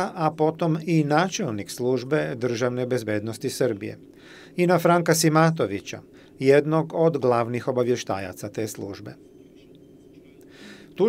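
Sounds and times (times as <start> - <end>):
faint steady hum: 0.0 - 11.0
quick breath drawn: 4.2 - 4.6, 10.5 - 11.0
person speaking: 4.6 - 9.2.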